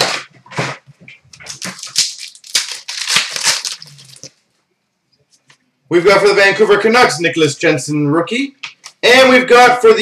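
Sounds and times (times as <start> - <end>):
card packaging tearing and crinkling: 1.5 - 4.3.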